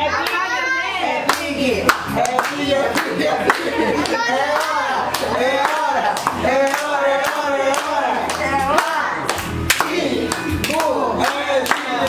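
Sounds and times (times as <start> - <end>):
group clapping hands: 0.2 - 0.5, 1.2 - 12.0.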